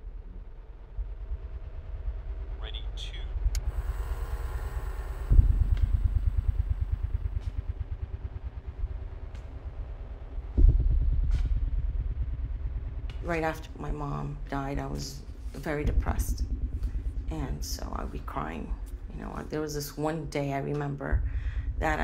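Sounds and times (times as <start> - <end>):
dark drone: 0.0 - 22.0
low pulsing throb: 0.0 - 22.0.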